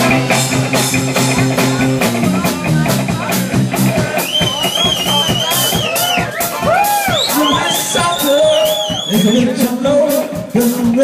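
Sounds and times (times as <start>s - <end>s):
drum kit beat: 0.0s - 11.0s
electric guitar: 0.0s - 11.0s.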